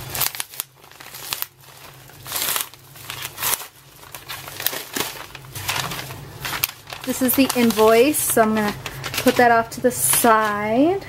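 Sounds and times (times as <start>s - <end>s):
mailer flap tearing open: 0.0s - 8.0s
paper wrapping rustling: 0.0s - 11.0s.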